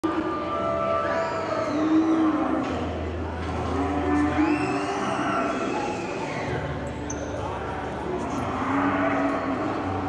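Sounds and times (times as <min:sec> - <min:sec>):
arena noise: 0:00.0 - 0:10.0
cattle mooing: 0:00.1 - 0:02.8, 0:03.6 - 0:05.7, 0:08.2 - 0:10.0.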